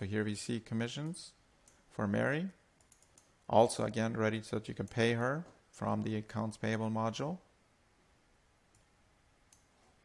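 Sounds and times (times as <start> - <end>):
computer mouse clicks: 2.8 - 3.4, 9.5 - 9.8.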